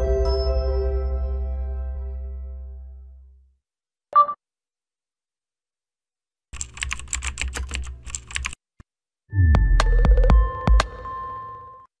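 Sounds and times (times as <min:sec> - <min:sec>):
keyboard keystroke clicks: 0:06.6 - 0:08.6.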